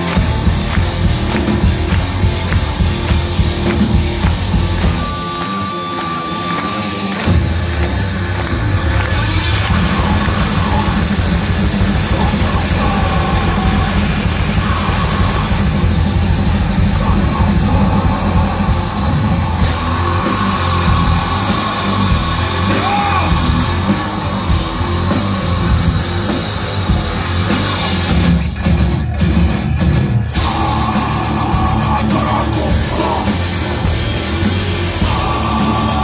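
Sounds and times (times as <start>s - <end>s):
bass guitar: 0.0s - 36.0s
distorted electric guitars: 0.0s - 36.0s
drum kit: 0.0s - 36.0s
shouted and sung vocals: 8.9s - 24.1s, 30.2s - 34.0s, 34.8s - 36.0s.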